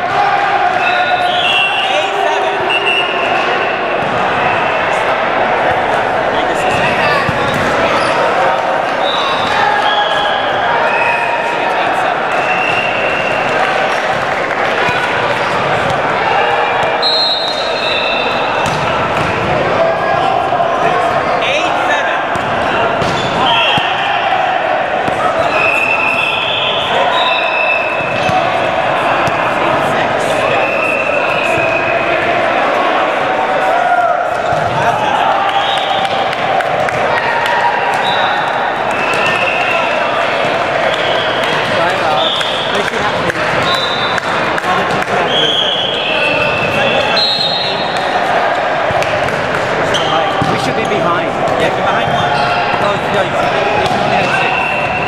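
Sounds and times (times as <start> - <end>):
voices echoing in hall: 0.0 - 55.0
sneaker squeaks: 6.7 - 8.3, 25.0 - 28.5, 49.9 - 51.0, 52.0 - 52.8.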